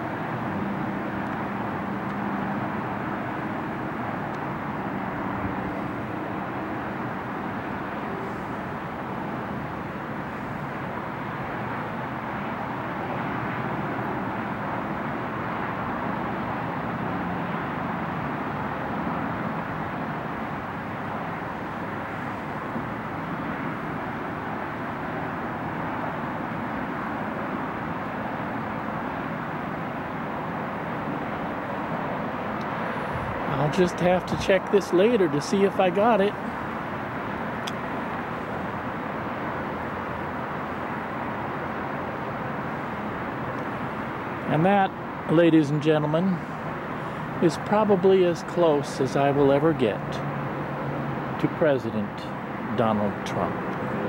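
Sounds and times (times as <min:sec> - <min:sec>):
distant aircraft drone: 0:00.0 - 0:54.0
outdoor rush of noise: 0:00.0 - 0:54.0.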